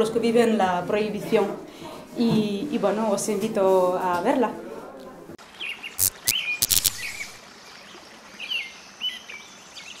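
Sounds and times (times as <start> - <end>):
short bird chirps: 5.9 - 7.4
sharp clicks: 6.0 - 7.4.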